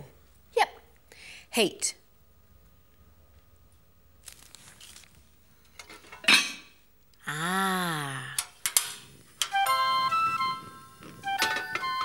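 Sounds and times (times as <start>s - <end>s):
soft rustle: 4.2s - 5.3s
cookware clattering: 5.8s - 6.7s, 11.3s - 12.0s.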